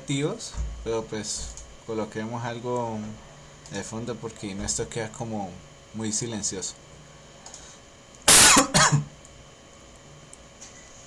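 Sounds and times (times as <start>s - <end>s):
man coughing: 8.3s - 9.1s.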